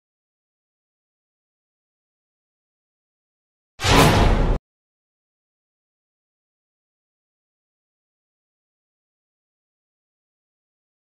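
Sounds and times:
short loud burst: 0:03.8 - 0:04.6.

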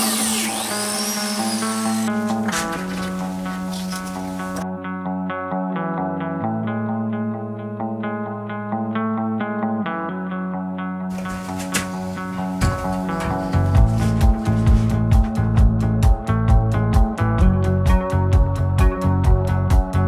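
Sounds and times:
plate joiner cutting wood: 0:00.0 - 0:04.6, 0:11.1 - 0:15.4
background music with guitar and bass: 0:00.0 - 0:20.0.

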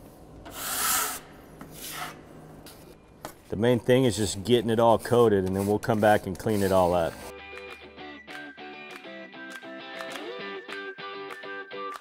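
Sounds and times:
metal scraper scraping tabletop: 0:00.5 - 0:02.2.

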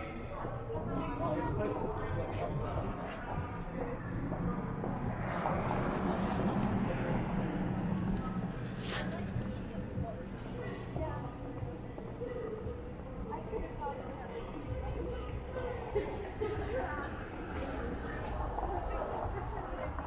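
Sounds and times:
indistinct voices of passers-by: 0:00.0 - 0:20.0
traffic noise: 0:00.0 - 0:20.0.

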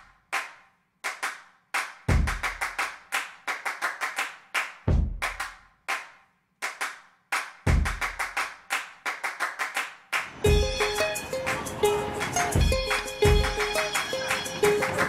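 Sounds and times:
sharp hand claps: 0:00.0 - 0:15.0.

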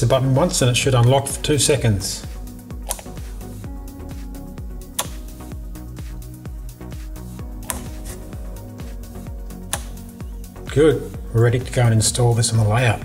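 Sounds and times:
background music: 0:00.0 - 0:13.0
solenoid door latch clicking: 0:05.0 - 0:05.3, 0:09.7 - 0:10.1.

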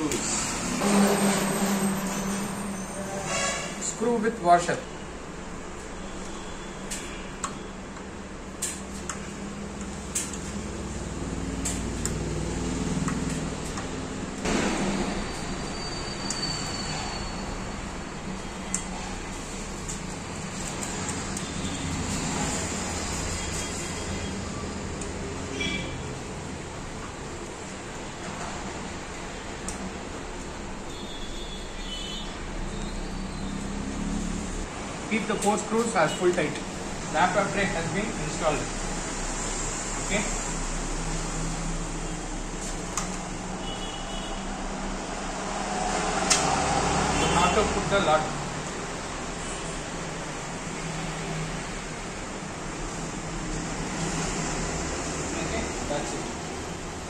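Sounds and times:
steady background noise: 0:00.0 - 0:57.0.

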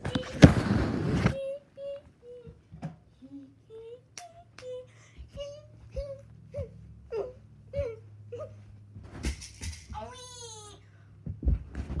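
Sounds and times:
sharp knocks and thumps: 0:11.2 - 0:12.0.

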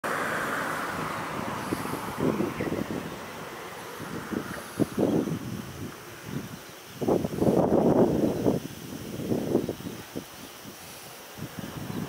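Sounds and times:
vehicle passing: 0:00.0 - 0:06.2
road traffic background: 0:00.0 - 0:12.0.

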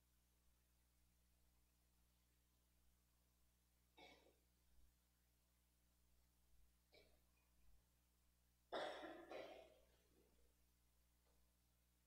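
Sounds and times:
person coughing: 0:08.7 - 0:10.0.

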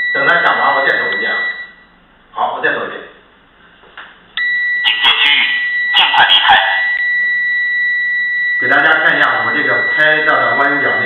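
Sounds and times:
multimeter continuity beep: 0:00.0 - 0:02.0, 0:04.4 - 0:11.0
recorded voice warning: 0:04.8 - 0:07.0, 0:08.6 - 0:11.0.

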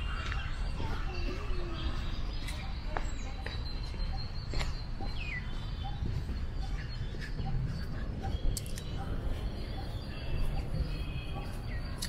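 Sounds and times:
birds chirping and whistling: 0:00.0 - 0:12.0
steady low rumble: 0:00.0 - 0:12.0.

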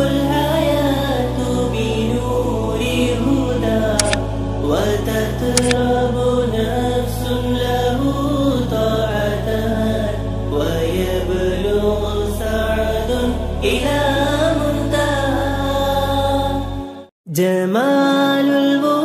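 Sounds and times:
chanted vocal melody: 0:00.0 - 0:19.0.

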